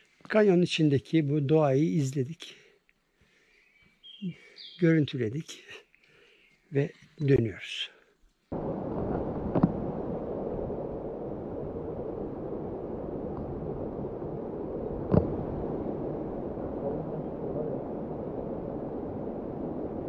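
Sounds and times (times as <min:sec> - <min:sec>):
flowing water: 0:08.5 - 0:20.0.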